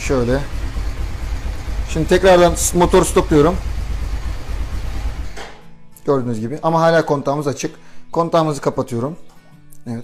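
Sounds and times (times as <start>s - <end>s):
motorcycle engine idling: 0.0s - 5.4s.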